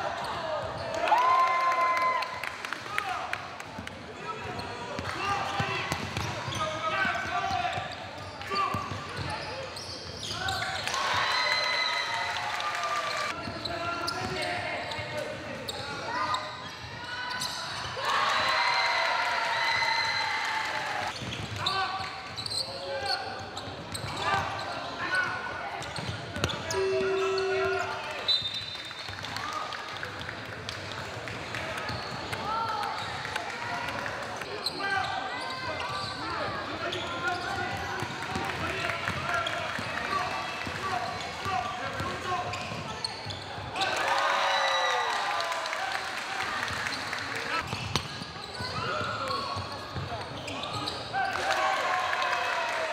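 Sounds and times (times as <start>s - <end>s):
players shouting in echoing gym: 4.1s - 28.3s, 31.7s - 52.9s.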